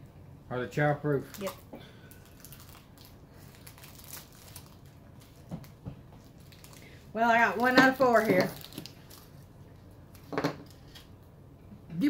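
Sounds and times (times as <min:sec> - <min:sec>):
plastic wrapper crinkling: 0:01.2 - 0:11.1.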